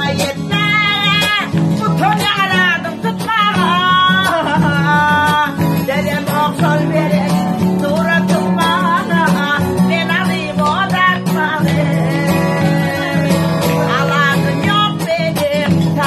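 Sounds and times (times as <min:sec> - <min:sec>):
acoustic guitar accompaniment: 0:00.0 - 0:16.0
woman singing: 0:00.0 - 0:16.0.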